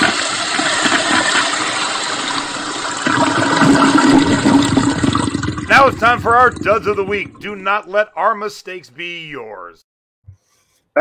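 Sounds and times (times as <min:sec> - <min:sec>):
toilet flushing: 0:00.0 - 0:07.7.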